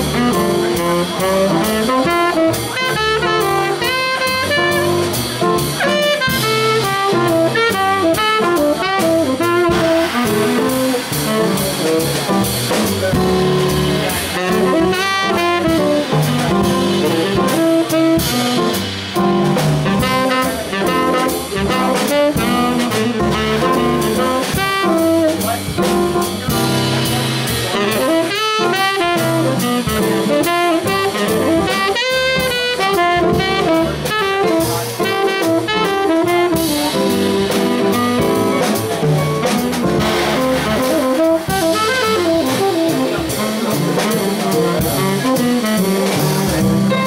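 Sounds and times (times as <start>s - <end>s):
drum kit: 0.0s - 47.0s
plucked double bass: 0.0s - 47.0s
saxophone solo: 0.0s - 47.0s.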